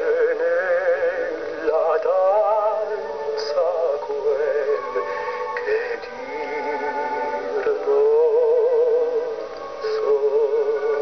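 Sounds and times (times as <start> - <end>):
musical accompaniment: 0.0 - 11.0
operetta singing with vibrato: 0.0 - 11.0.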